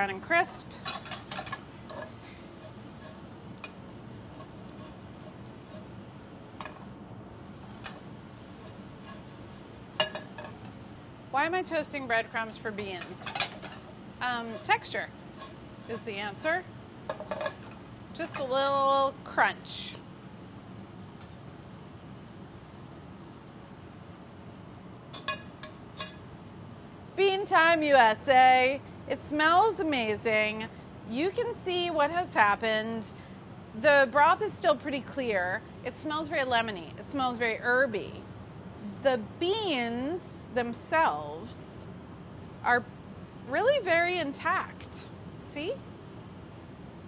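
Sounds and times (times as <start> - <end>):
hot oil hissing: 0.0 - 30.6
metal spoon scraping skillet: 0.5 - 6.9, 7.6 - 10.8, 12.7 - 18.7, 25.1 - 26.3.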